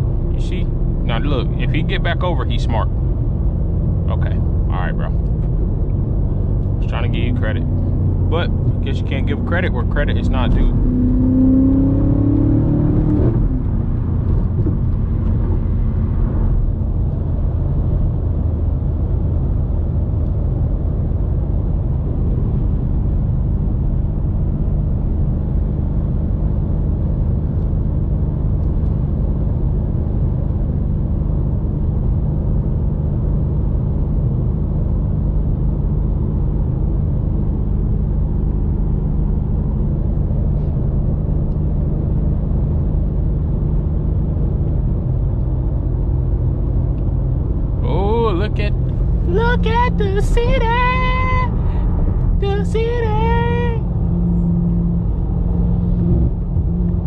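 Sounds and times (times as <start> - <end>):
low engine drone: 0.0 - 57.0
road and tyre noise: 0.0 - 57.0.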